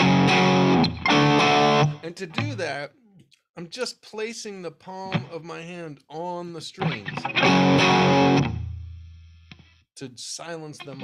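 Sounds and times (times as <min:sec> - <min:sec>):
distorted electric guitar chord: 0:00.0 - 0:02.0.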